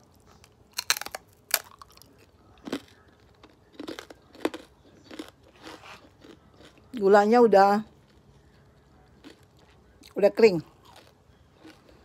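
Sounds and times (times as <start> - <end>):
person crunching cracker: 0.0 - 7.0, 8.0 - 12.0.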